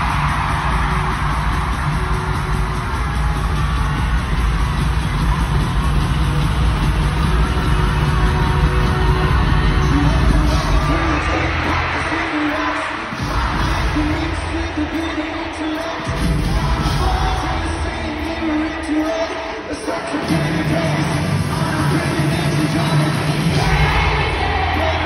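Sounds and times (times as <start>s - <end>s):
crowd noise: 0.0s - 25.0s
live pop band: 0.0s - 25.0s.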